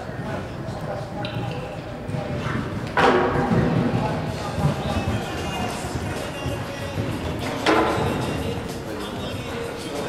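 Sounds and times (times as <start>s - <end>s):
background voices: 0.0s - 10.0s.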